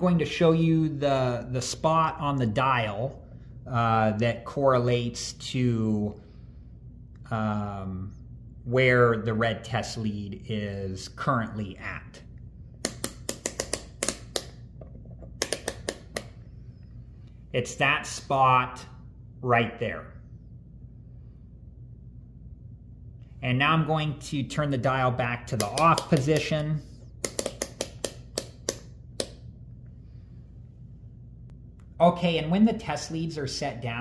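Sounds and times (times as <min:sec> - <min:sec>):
multimeter dial clicking: 0:15.4 - 0:16.4, 0:27.2 - 0:29.4.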